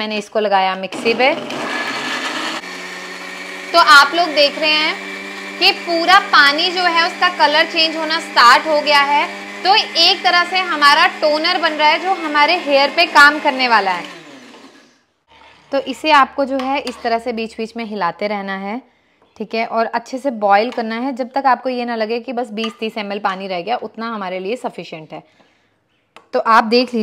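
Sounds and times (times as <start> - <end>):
electric mixer grinder running: 0.9 - 15.9.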